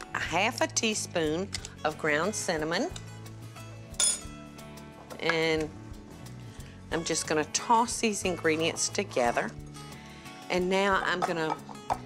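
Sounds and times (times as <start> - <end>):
soft background music: 0.0 - 12.0
metal spoon clinking on glass bowl: 4.0 - 4.3.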